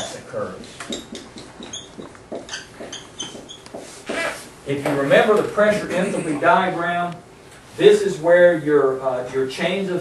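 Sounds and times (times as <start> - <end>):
marker squeaking on a whiteboard: 0.0 - 4.5.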